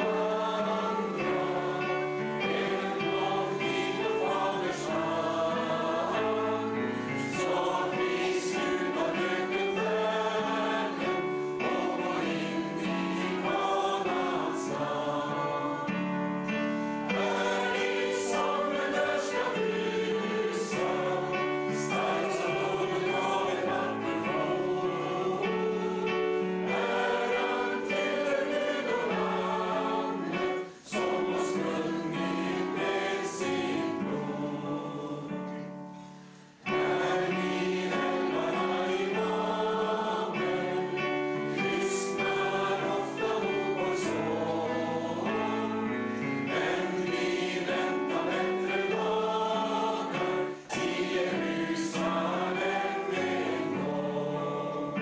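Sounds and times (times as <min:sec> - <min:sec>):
congregation singing a hymn: 0:00.0 - 0:55.0.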